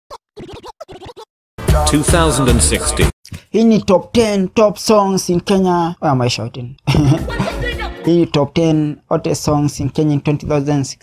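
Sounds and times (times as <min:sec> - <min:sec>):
record scratch cuts: 0:00.4 - 0:03.1.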